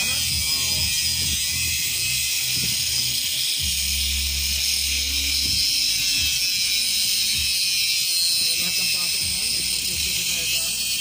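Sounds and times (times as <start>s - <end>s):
rotary grinder grinding metal: 0.0s - 11.0s.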